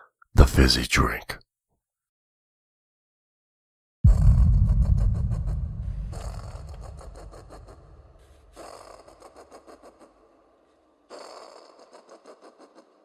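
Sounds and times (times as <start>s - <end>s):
low rumble: 4.1s - 9.0s
pulsing rattle: 4.1s - 9.0s.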